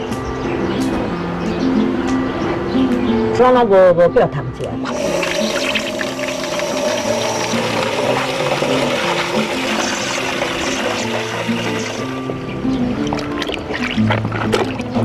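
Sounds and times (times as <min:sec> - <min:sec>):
background music with held notes: 0:00.0 - 0:15.0
tap water into metal basin: 0:04.9 - 0:15.0.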